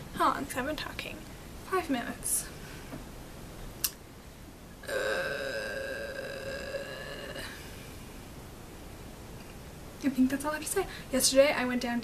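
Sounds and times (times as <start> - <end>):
long burp: 4.8 - 7.6.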